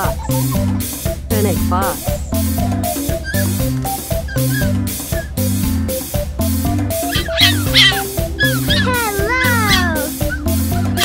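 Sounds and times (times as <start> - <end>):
fox whining calls: 0.0 - 0.9, 2.0 - 5.5, 6.9 - 11.0
background music with steady beat: 0.0 - 11.0.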